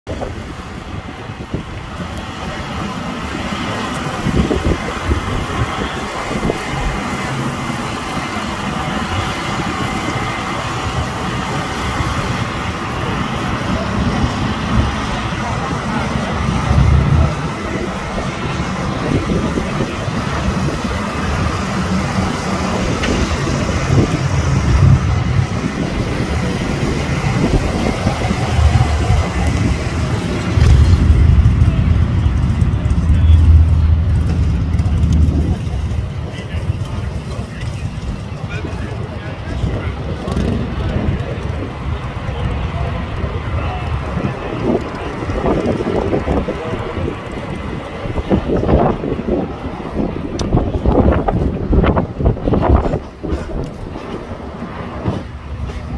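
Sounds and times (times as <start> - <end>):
people talking in background: 0.1 - 55.9
motorcycles riding slowly past: 0.4 - 48.3.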